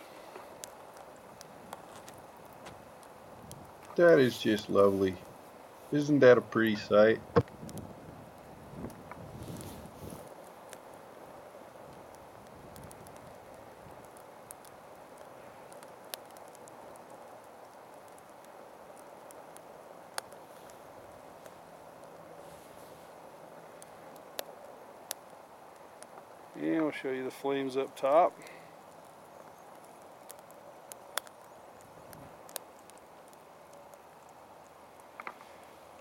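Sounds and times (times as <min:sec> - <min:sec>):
sharp pops of burning sticks: 0:00.0 - 0:36.0
wood fire rushing: 0:00.0 - 0:36.0.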